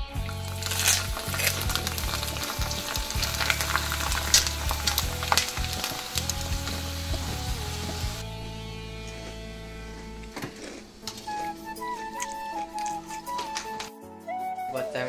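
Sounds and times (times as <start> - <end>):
hot oil sizzling and crackling: 0.0 - 10.3.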